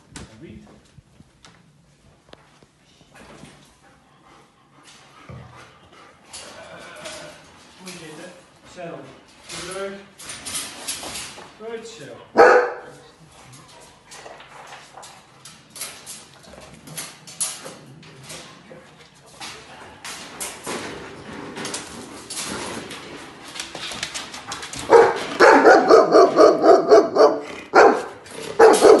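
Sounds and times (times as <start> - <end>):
dog barking loudly: 12.4 - 12.9, 24.8 - 29.0
scattered clicks and knocks: 14.1 - 25.6.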